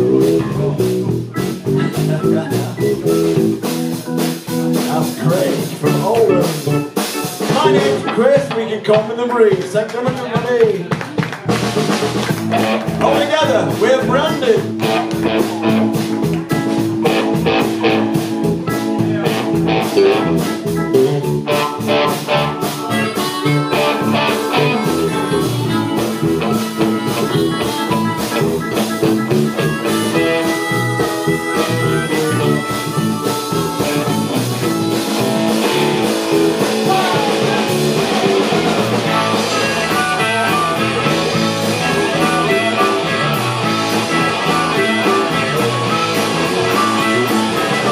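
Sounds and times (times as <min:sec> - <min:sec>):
blues harmonica: 0:00.0 - 0:08.7, 0:11.8 - 0:47.9
rhythm and blues band playing: 0:00.0 - 0:47.9.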